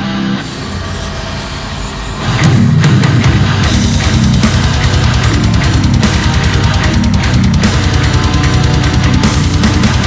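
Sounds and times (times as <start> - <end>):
distorted guitar chords: 0.0 - 10.0
drums: 0.0 - 10.0.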